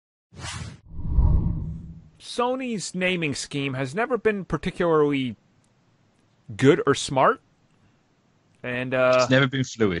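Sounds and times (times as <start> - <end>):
deep whoosh: 0.6 - 2.2.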